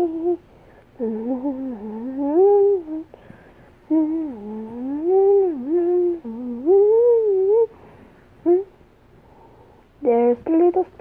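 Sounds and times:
child humming: 0:00.0 - 0:00.4, 0:01.0 - 0:03.1, 0:03.9 - 0:07.7.

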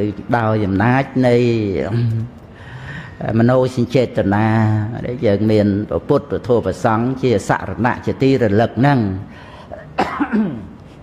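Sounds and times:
man coughing: 0:09.7 - 0:10.8.

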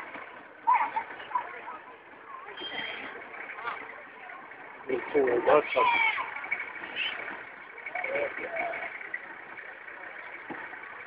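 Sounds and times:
slow-moving vehicles running: 0:00.0 - 0:11.0
people talking: 0:00.6 - 0:11.0.

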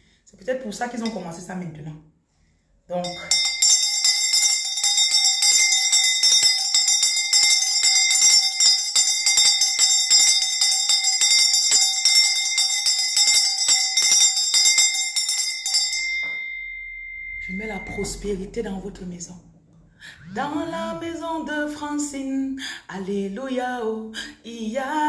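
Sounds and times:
hand bell clanging: 0:03.0 - 0:18.4.

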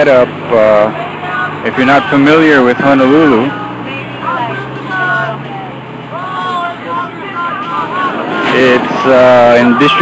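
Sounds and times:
low hum of traffic: 0:00.0 - 0:10.0
people talking: 0:00.0 - 0:10.0.

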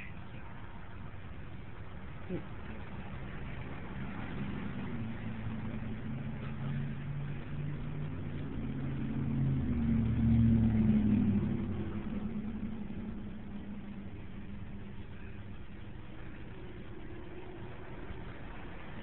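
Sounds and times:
engine humming: 0:00.0 - 0:19.0.

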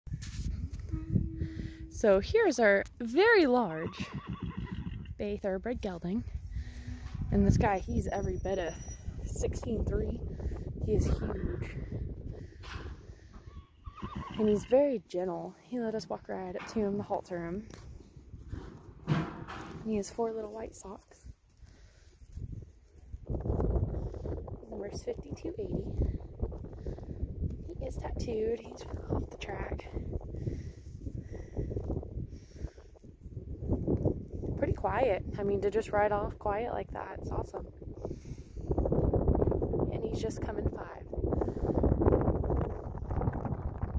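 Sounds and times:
wind rumbling on microphone: 0:00.1 - 0:43.9
low steady rumble: 0:00.4 - 0:04.1
horse whinnying: 0:03.8 - 0:05.1, 0:13.5 - 0:14.6
horse hooves on soft dirt: 0:10.1 - 0:26.8.

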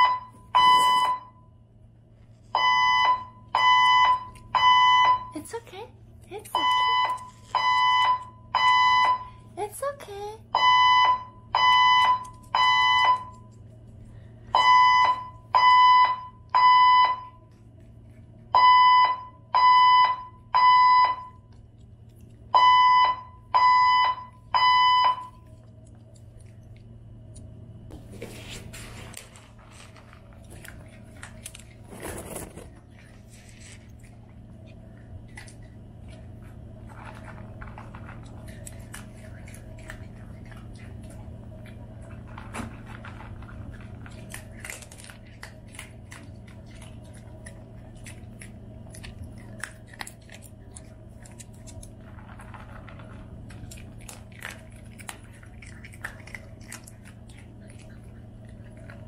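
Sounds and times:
fire alarm beeping: 0:00.0 - 0:01.6, 0:02.5 - 0:05.4, 0:06.5 - 0:09.4, 0:10.5 - 0:13.5, 0:14.5 - 0:17.4, 0:18.5 - 0:21.4, 0:22.5 - 0:25.4.

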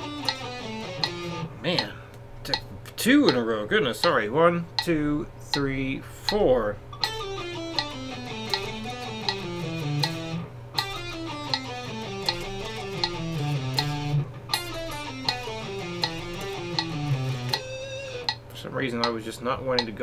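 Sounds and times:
electric guitar scale run: 0:00.0 - 0:02.7, 0:07.0 - 0:19.2
metronome clicking: 0:00.0 - 0:20.0.

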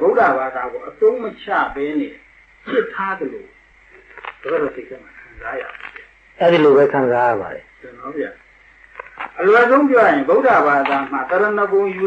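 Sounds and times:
man speaking: 0:04.4 - 0:08.4, 0:09.3 - 0:12.0.

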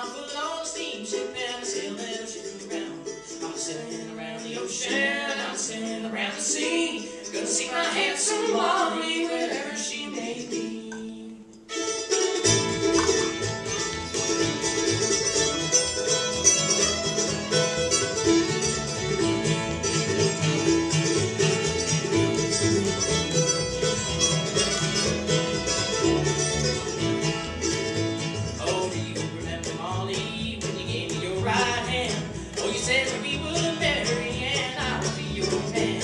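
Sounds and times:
acoustic guitar: 0:00.0 - 0:36.0
mandolin: 0:00.0 - 0:36.0
upright bass: 0:00.0 - 0:36.0
fiddle: 0:11.6 - 0:36.0.

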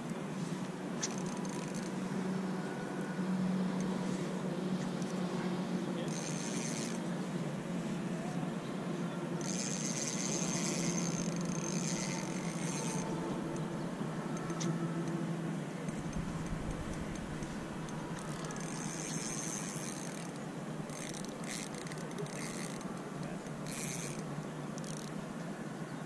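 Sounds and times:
wind: 0:00.0 - 0:26.0
fishing reel whirring: 0:01.0 - 0:02.0, 0:06.1 - 0:07.1, 0:09.4 - 0:15.1, 0:15.8 - 0:25.2.

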